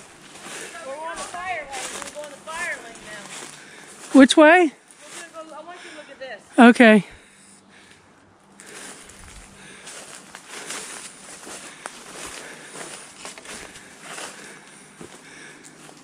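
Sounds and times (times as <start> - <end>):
footsteps on dry leaves: 0.0 - 4.2, 4.8 - 5.8, 8.5 - 16.0.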